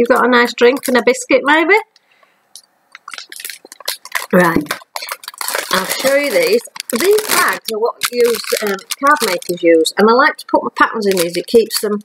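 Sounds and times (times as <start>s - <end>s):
mug clicks and crackles: 1.9s - 9.7s.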